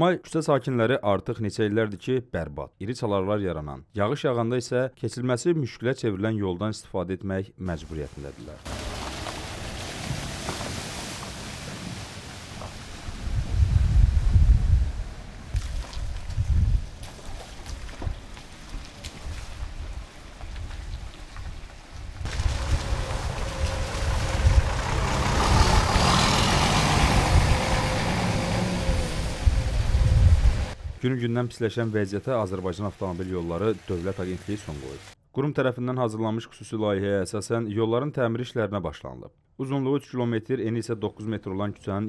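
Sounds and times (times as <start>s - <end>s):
tyres in mud and puddles: 7.7s - 31.0s, 31.6s - 35.2s
car engine rumble: 8.6s - 15.6s, 22.2s - 30.8s.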